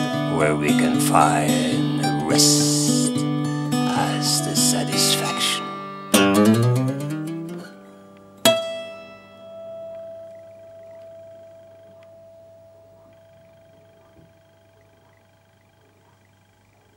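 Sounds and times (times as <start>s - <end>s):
plucked string note ringing: 5.7s - 14.7s.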